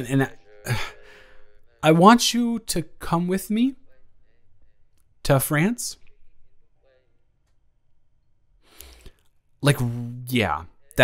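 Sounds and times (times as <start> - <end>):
man breathing: 0.7 - 1.7, 8.6 - 9.3.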